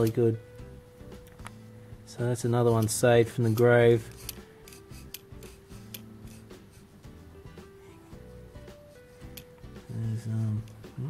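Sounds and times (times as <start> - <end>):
quiet background music: 0.0 - 11.0
metal spindle clicking and rubbing: 2.6 - 6.8, 9.2 - 9.6.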